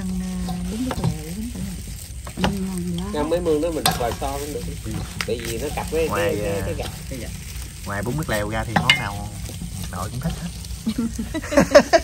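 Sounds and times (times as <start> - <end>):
salad rustling in bowl: 0.0 - 12.0
light clicks against metal bowl: 3.8 - 4.1.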